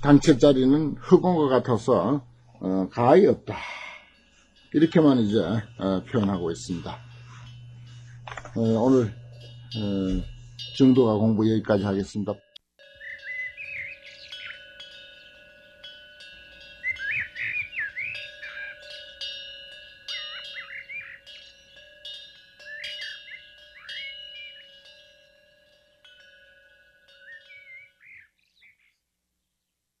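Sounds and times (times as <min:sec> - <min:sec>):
low steady hum: 0:00.0 - 0:26.8
ringing chimes: 0:00.0 - 0:28.6
birds chirping: 0:00.0 - 0:29.8.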